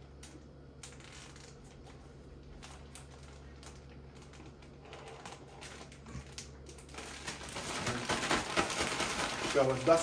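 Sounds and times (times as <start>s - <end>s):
plastic bag crinkling: 0.0s - 10.0s
steady low hum: 0.0s - 10.0s.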